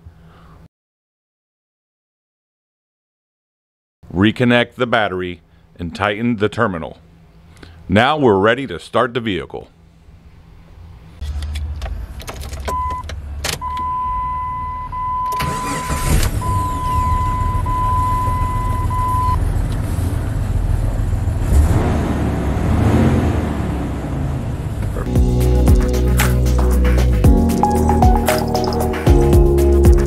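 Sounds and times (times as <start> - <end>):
car engine cranking and running: 11.2 - 14.0, 15.2 - 30.0.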